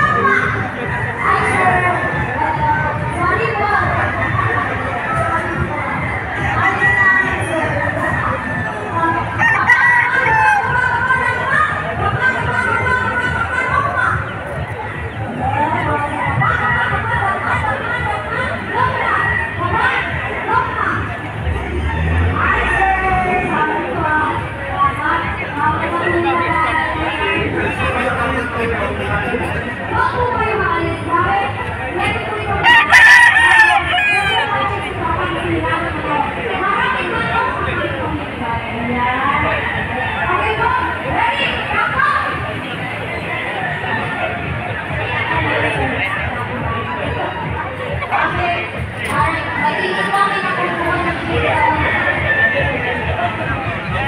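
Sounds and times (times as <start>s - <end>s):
crowd hubbub: 0.0s - 54.0s
rooster crowing: 9.4s - 10.8s, 32.6s - 34.6s.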